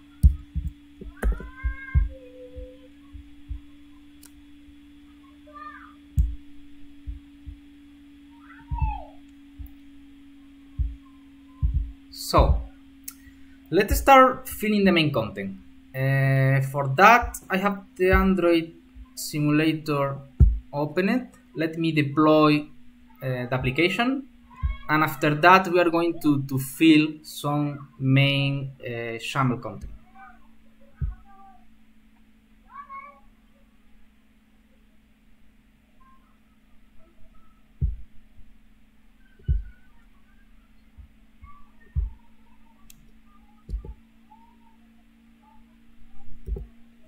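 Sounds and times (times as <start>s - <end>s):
rising and falling tone: 0.0s - 13.2s
faint high-pitched calls: 0.0s - 13.8s, 30.0s - 31.8s, 35.8s - 38.0s, 39.0s - 47.0s
electrical hum: 0.0s - 47.0s
soft thump: 37.8s - 38.1s.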